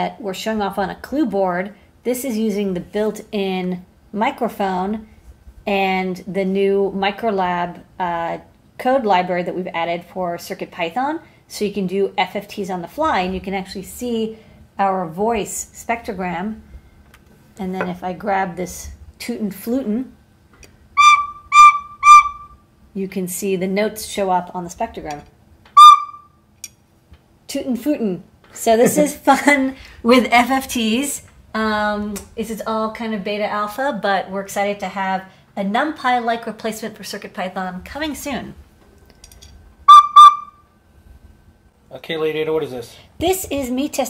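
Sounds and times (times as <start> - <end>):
toy flute toots: 21.0 - 22.6, 25.8 - 26.4, 39.9 - 40.7.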